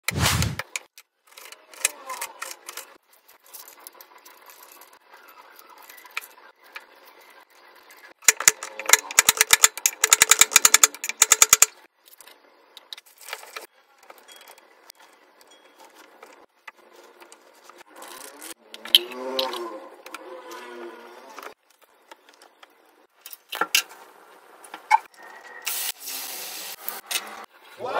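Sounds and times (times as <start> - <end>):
hot oil sizzling loudly: 25.6 - 27.0.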